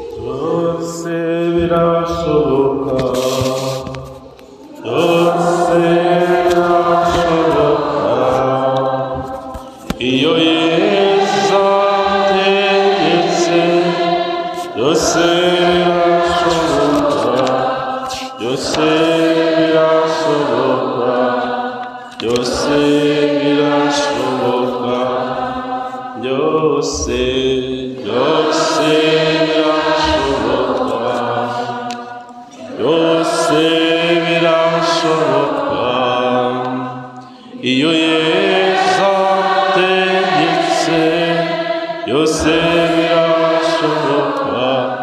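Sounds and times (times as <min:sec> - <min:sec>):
voices singing a hymn: 0:00.0 - 0:45.0.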